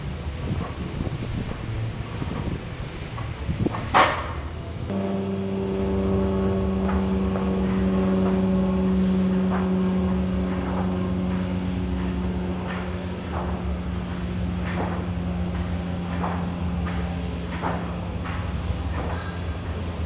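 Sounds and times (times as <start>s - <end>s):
steady droning hum: 0.0s - 20.0s.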